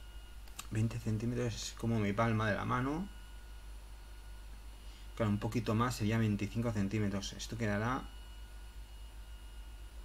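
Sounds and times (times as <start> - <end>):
faint high-pitched tones: 0.0 - 10.0
low steady hum: 0.0 - 10.0
soft hiss: 0.0 - 10.0.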